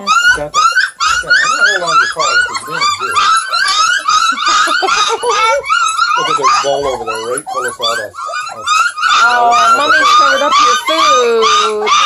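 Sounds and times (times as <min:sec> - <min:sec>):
puppies whining and squealing: 0:00.0 - 0:12.0.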